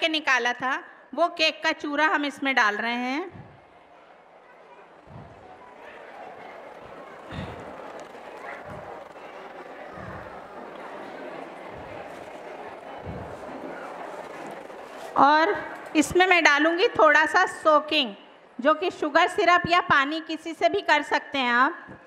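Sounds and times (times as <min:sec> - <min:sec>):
background chatter: 0:02.6 - 0:19.6.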